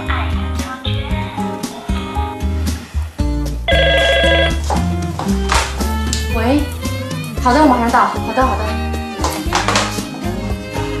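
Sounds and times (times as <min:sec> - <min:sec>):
background music: 0:00.0 - 0:11.0
telephone warbling ring: 0:03.7 - 0:04.6.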